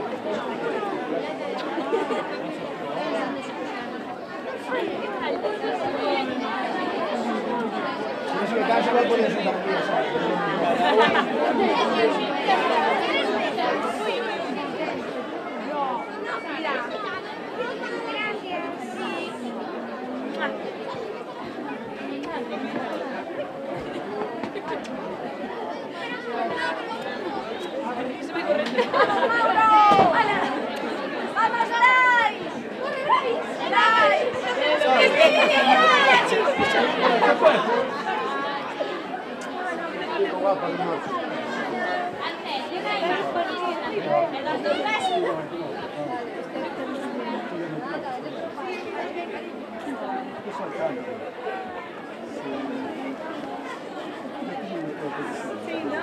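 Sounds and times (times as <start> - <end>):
crowd chattering: 0.0 - 56.0.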